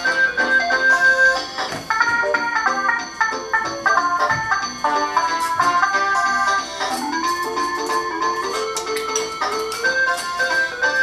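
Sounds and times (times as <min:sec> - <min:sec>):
toy keyboard organ-like tune: 0:00.0 - 0:11.0.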